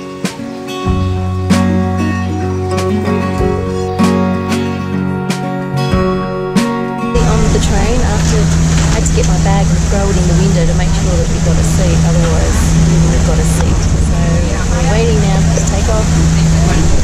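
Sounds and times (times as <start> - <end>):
train engine humming: 0.0 - 17.0
chatter of many voices: 7.2 - 17.0.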